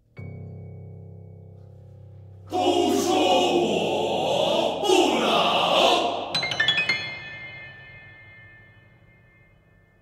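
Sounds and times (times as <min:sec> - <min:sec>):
choir singing: 0:02.5 - 0:07.0.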